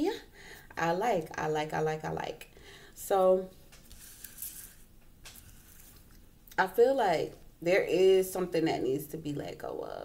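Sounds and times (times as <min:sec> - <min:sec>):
cards rubbing on wooden table: 0:03.8 - 0:06.0.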